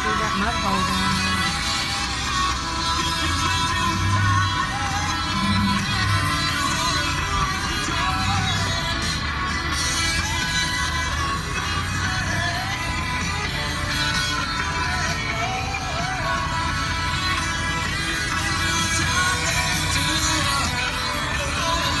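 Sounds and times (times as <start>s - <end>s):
song on radio: 0.0s - 22.0s.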